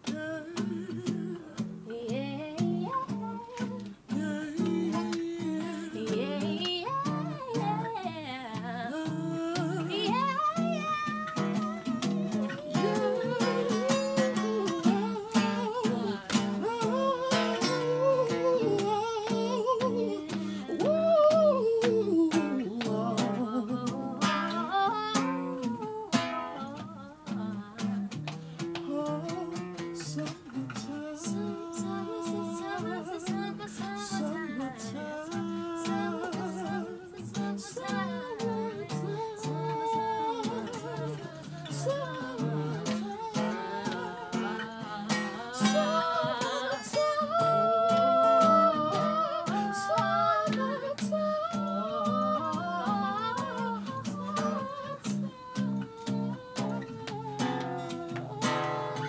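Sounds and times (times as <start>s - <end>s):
acoustic guitar chords: 0.0s - 59.0s
man and woman singing: 0.0s - 59.0s.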